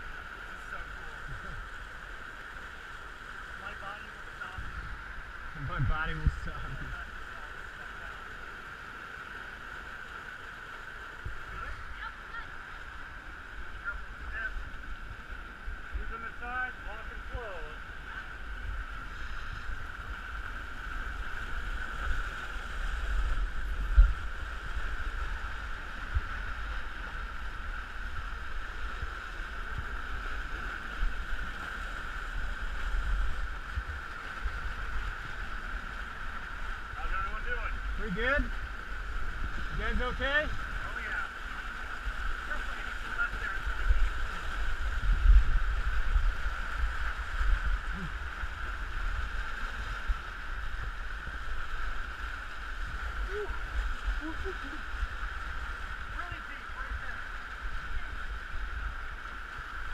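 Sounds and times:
wind hiss: 0.0 - 59.9.

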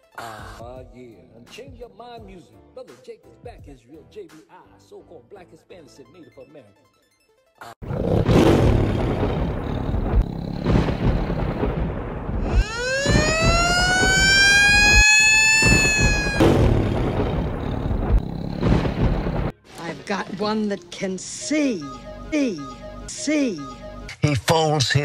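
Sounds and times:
music: 0.0 - 7.7, 19.5 - 24.1
rumbling roar with heavy hits: 7.8 - 19.5
rising tone: 12.4 - 19.1.

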